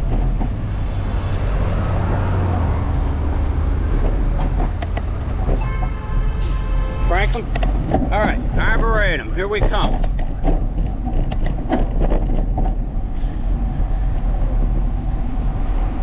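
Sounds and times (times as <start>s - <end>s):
city traffic: 0.0s - 16.0s
wind rumble on microphone: 0.0s - 16.0s.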